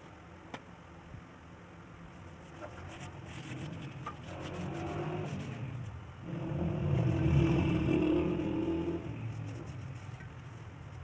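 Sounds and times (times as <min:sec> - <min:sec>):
motor vehicle passing by: 0:03.0 - 0:10.2.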